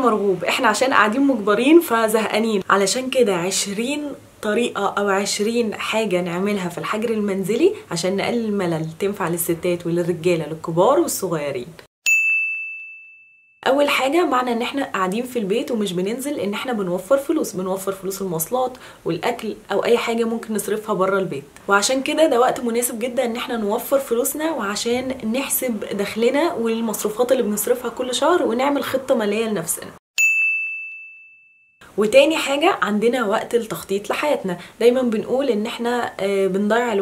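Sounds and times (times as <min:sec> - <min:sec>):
bright ding: 0:12.0 - 0:13.6, 0:30.2 - 0:31.8.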